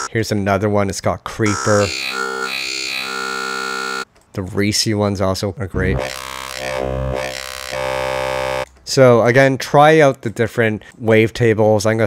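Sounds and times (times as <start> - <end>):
synthesizer bass note: 1.5 - 4.0, 5.8 - 8.6.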